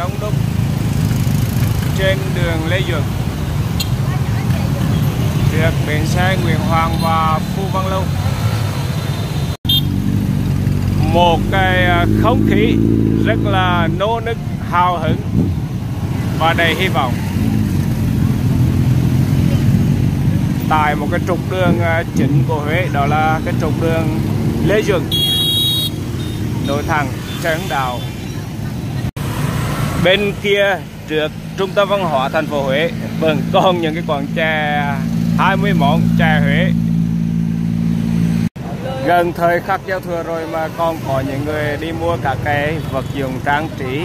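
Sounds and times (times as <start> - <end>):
motor scooter traffic rumble: 0.0 - 44.0.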